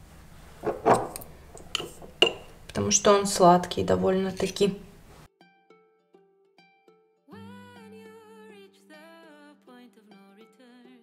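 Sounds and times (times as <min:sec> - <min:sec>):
metal teaspoons clicking and scraping: 0:04.2 - 0:04.7.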